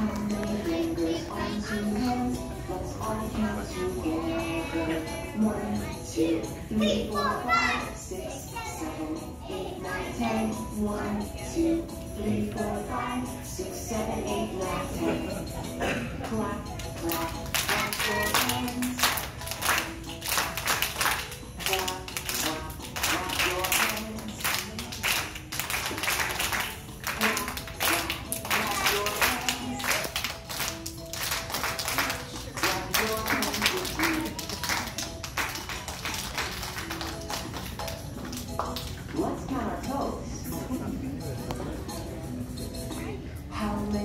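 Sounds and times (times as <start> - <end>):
children's song singing: 0.0 - 44.0
children clapping: 16.8 - 39.0.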